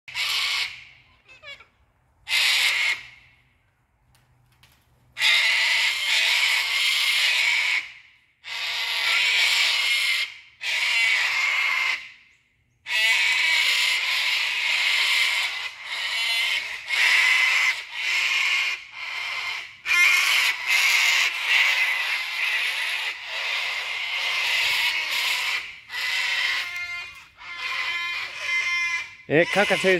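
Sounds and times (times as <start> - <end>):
cockatoos screeching: 0.1 - 1.7, 2.3 - 3.2, 5.2 - 12.1, 12.9 - 29.9.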